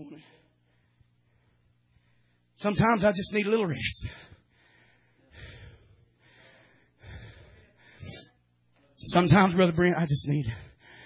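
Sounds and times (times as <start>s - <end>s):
man breathing into microphone: 4.0s - 8.3s.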